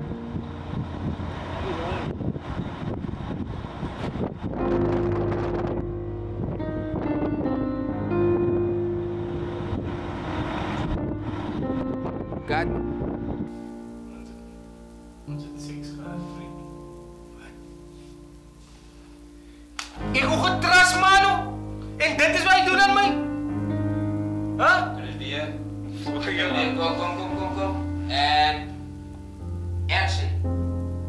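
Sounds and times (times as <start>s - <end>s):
film music with held chords: 0.0s - 3.2s, 4.5s - 31.0s
noisy background: 0.0s - 31.0s.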